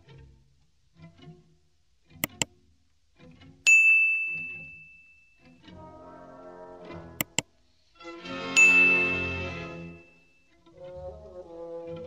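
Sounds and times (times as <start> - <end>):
high clear bell ding: 3.7 - 5.3, 8.6 - 10.3.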